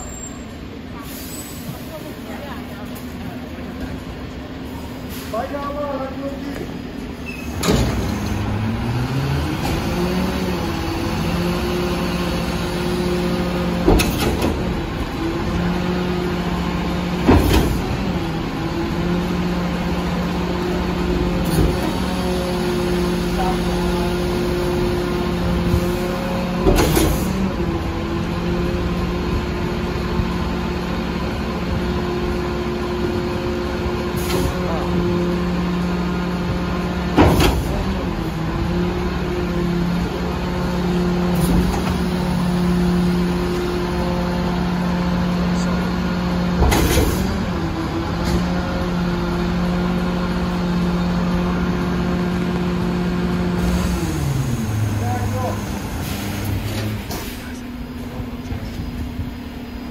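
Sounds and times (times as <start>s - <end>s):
diesel engine at raised revs: 0.0s - 59.9s
hydraulic packer compacting cardboard: 40.9s - 43.9s, 46.4s - 50.6s, 52.0s - 59.0s.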